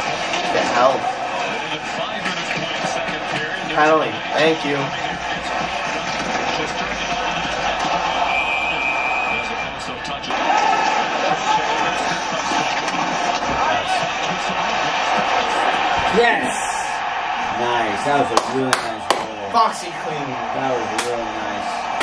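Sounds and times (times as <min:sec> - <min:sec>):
arena crowd noise: 0:00.0 - 0:22.0
sports commentary: 0:00.0 - 0:22.0.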